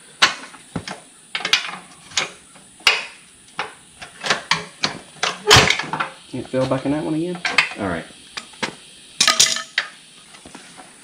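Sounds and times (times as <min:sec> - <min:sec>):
metal clanks and knocks: 0:00.2 - 0:06.2, 0:07.4 - 0:07.8.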